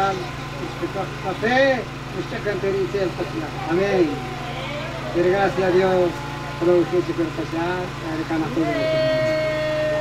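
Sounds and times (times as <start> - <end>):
steady low hum: 0.0 - 10.0
man exclaiming over loudspeakers: 5.0 - 9.7.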